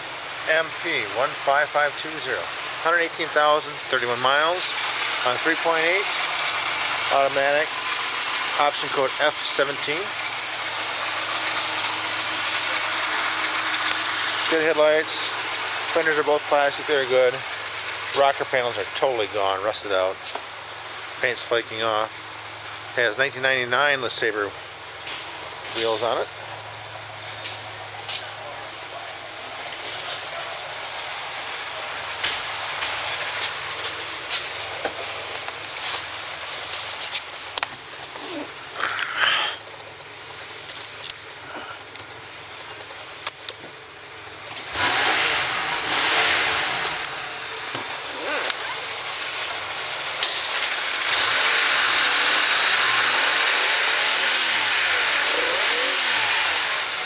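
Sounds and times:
car engine idling: 0.0s - 23.6s, 24.3s - 57.0s
steady hiss: 0.0s - 57.0s.

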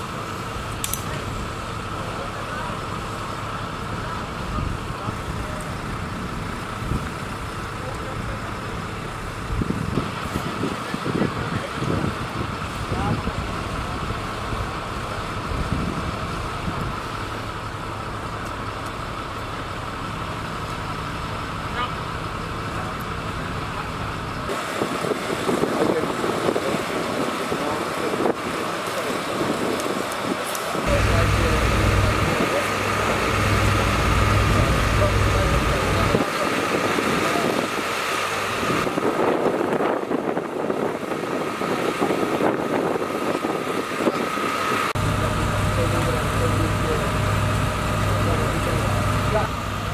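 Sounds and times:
constant high whine: 0.0s - 49.9s
engines running: 0.0s - 49.9s
crew voices: 25.4s - 38.9s.

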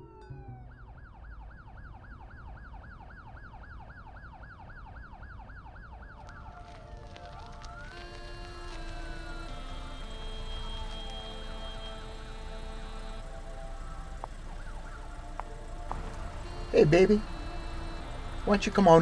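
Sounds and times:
held steady tones: 0.0s - 19.0s
siren wail: 0.0s - 19.0s
siren yelping: 0.0s - 19.0s.

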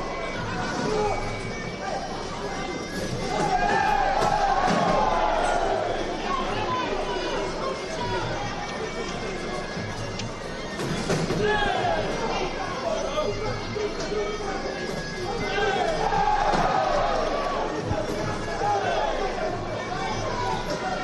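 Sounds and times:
arena crowd shouting: 0.0s - 9.2s, 11.3s - 21.0s.

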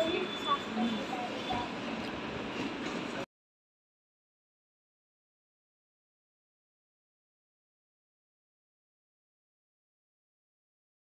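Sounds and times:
faint voices: 0.0s - 2.0s.

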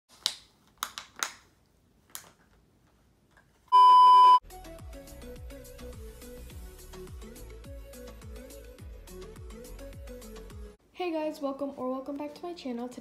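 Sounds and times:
sharp plastic crackles: 0.1s - 2.6s
loud electronic beep: 3.8s - 4.4s.

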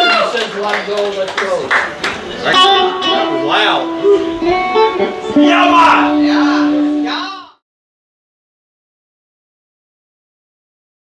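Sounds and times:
live band playing: 1.8s - 7.5s
electric guitar ringing notes: 2.4s - 7.6s.

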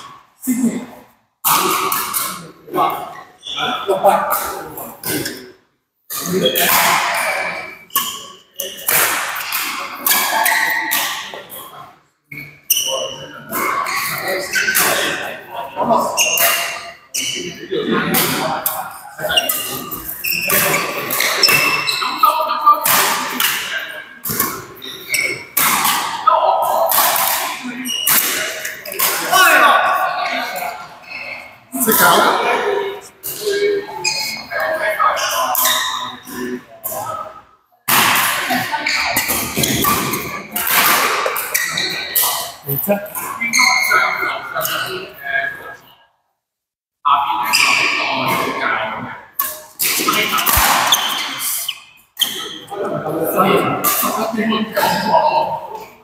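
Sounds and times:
players' voices: 0.0s - 46.0s, 47.0s - 56.0s
shoe squeaks on court floor: 3.4s - 3.9s, 12.3s - 15.2s, 16.1s - 17.6s, 19.2s - 22.3s, 22.9s - 26.2s, 26.9s - 29.2s, 33.3s - 36.4s, 38.8s - 42.6s, 43.2s - 44.9s, 49.4s - 52.7s
racket hitting shuttlecock: 8.8s - 11.2s, 22.8s - 26.2s, 26.9s - 29.3s, 39.2s - 42.5s, 49.4s - 51.6s.

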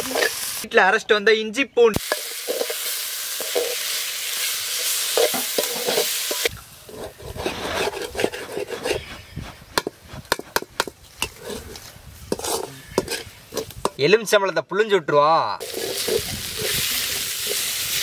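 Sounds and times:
grinding stone scraping on slab: 6.9s - 13.7s.

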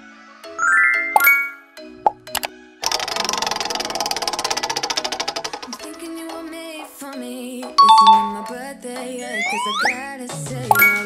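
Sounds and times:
prize wheel ticking: 2.2s - 6.1s, 7.8s - 8.6s.

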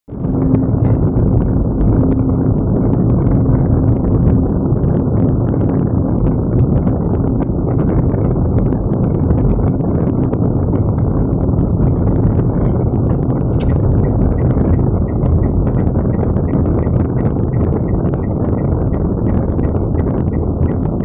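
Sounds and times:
engine and tyre rumble: 0.1s - 21.0s.

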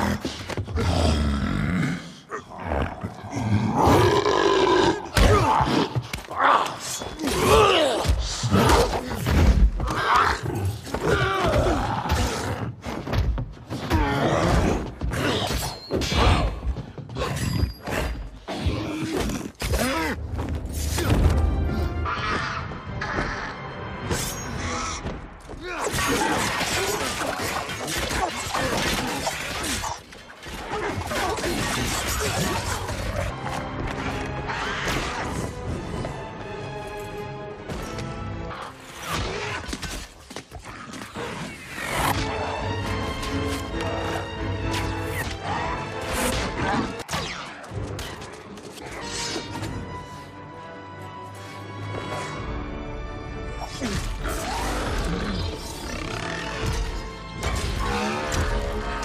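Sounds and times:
creature growling and roaring: 0.0s - 9.1s, 53.6s - 57.0s.

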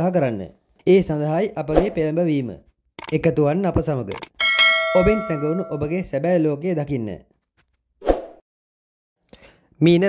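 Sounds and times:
person speaking: 0.8s - 6.2s
notification ding: 4.4s - 6.0s.

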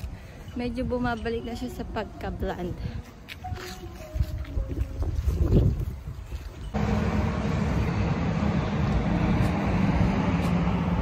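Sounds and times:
wind buffeting microphone: 0.0s - 11.0s
road traffic: 6.6s - 11.0s
loud steady rush with low hum: 6.8s - 11.0s.

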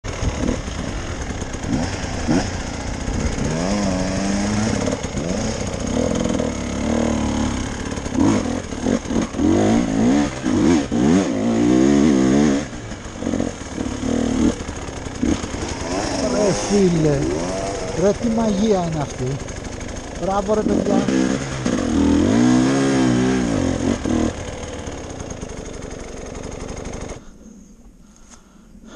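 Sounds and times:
dirt bike engine revving: 0.0s - 27.2s.

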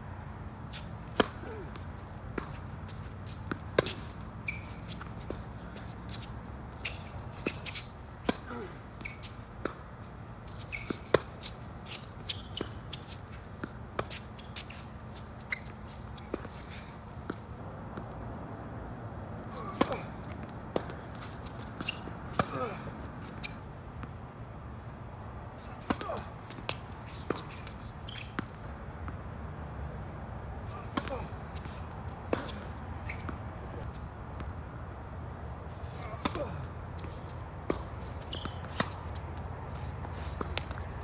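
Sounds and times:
racket hitting tennis ball: 0.6s - 14.9s, 19.5s - 23.6s, 25.5s - 29.2s, 30.6s - 34.6s, 35.9s - 41.0s
tennis ball bouncing: 0.6s - 16.6s, 19.5s - 24.2s, 25.5s - 29.2s, 30.6s - 34.6s, 35.9s - 41.0s
shoe squeak: 0.6s - 17.4s, 19.4s - 23.8s, 25.6s - 28.7s, 30.7s - 34.0s, 35.9s - 41.0s.

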